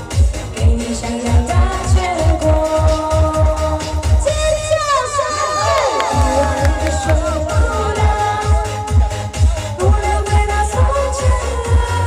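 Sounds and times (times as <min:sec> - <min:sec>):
dance-pop music: 0:00.0 - 0:12.0
high sliding shouts and cheers: 0:04.9 - 0:08.0
kick-drum beat: 0:05.7 - 0:12.0.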